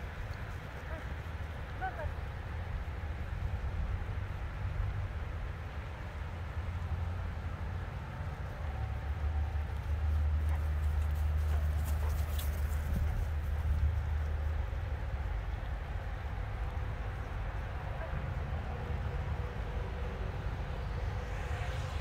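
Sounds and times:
low rumble on microphone: 11.2s - 22.0s.

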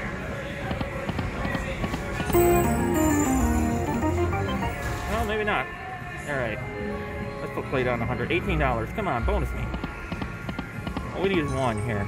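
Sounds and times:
casino background noise: 1.2s - 5.0s.

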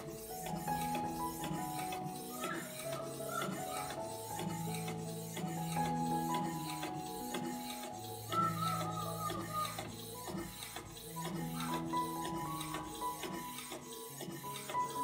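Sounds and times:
instrumental music: 0.0s - 15.0s.

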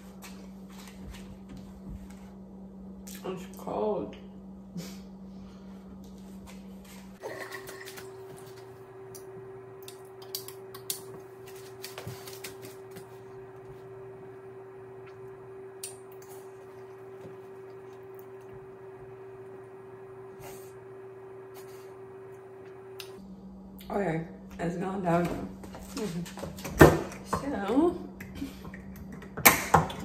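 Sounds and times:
electrical hum: 0.0s - 30.0s.

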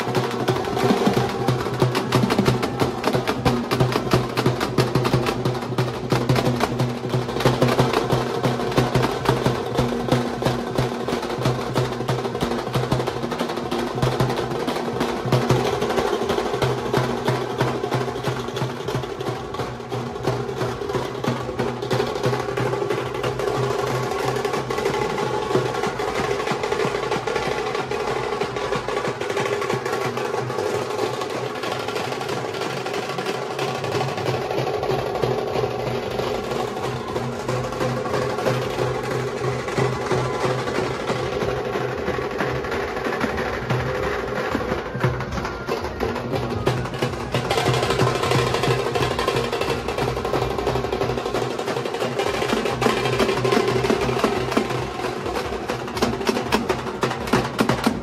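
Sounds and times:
drummers beating stick drums: 0.0s - 58.0s.

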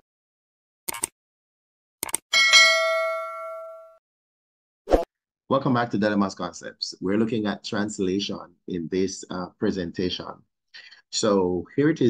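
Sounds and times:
notification bell ding: 2.3s - 4.0s.

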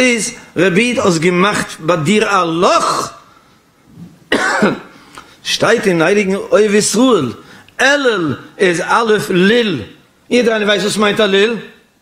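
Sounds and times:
man speaking: 0.0s - 3.2s, 5.4s - 11.9s
man coughing into microphone: 4.3s - 5.0s.

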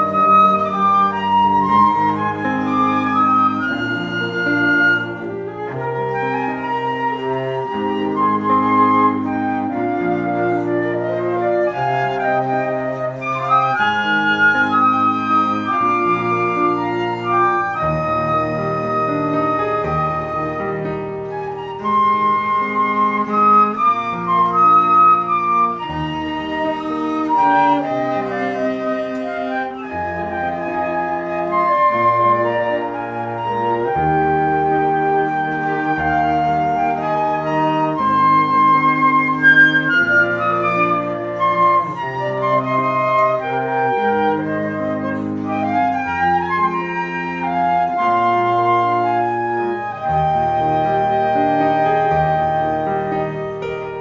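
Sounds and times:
bowed cello bass line: 0.0s - 54.0s
flutes playing melody: 0.0s - 54.0s.

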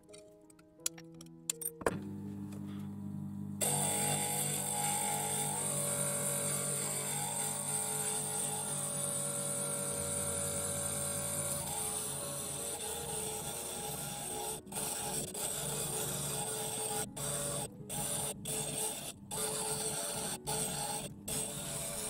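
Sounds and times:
background music: 0.0s - 2.6s, 3.6s - 22.0s
glass grinder grinding glass: 3.6s - 22.0s.

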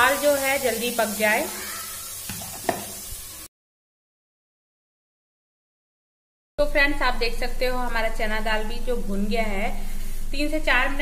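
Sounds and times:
food sizzling in oil: 0.0s - 3.5s.

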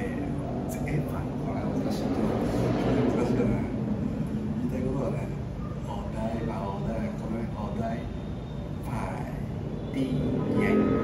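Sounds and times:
distant city traffic rumble: 0.0s - 11.0s
faint man's voice: 8.8s - 11.0s.

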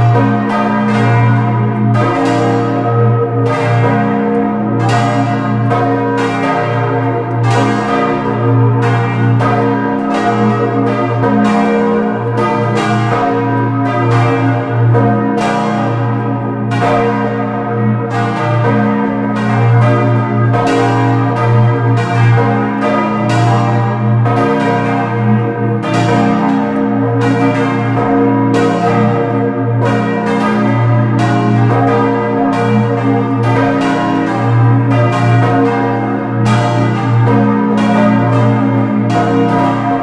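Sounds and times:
church bells pealing: 0.0s - 40.0s.

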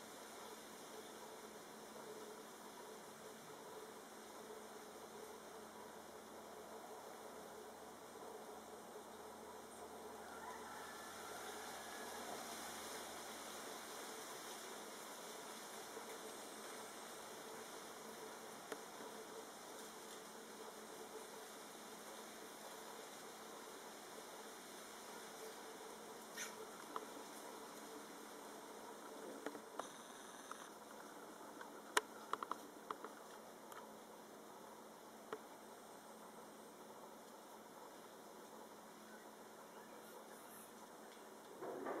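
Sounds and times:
faint insect buzz: 0.0s - 42.0s
low hiss: 0.0s - 42.0s
faint ticks: 18.6s - 20.3s, 29.4s - 33.9s, 35.2s - 35.5s.

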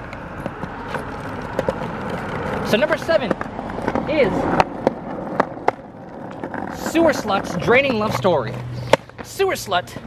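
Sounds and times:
skateboard wheels rumbling on asphalt: 0.0s - 10.0s.

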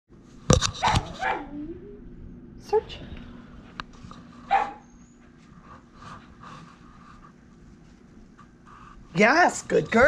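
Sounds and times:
dog barking sharply: 0.8s - 1.5s, 4.5s - 4.8s
dog whining: 0.8s - 2.1s.

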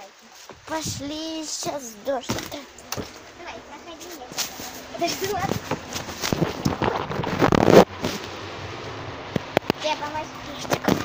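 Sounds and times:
phone rubbing against clothing: 4.4s - 8.2s.

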